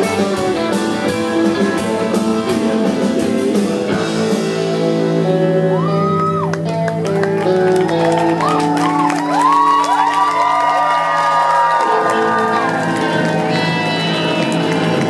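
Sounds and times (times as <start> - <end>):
crowd whooping and cheering: 5.3 - 15.0
applause: 6.2 - 15.0
live band chord ringing: 11.8 - 15.0.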